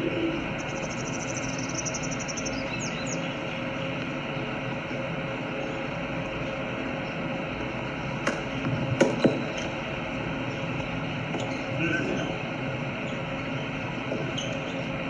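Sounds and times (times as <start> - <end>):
outdoor background noise: 0.0 - 15.0
bird chirps: 0.6 - 3.4.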